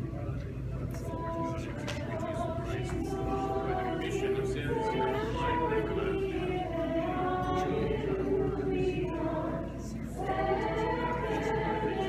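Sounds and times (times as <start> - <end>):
choir singing unaccompanied: 1.0 - 12.0.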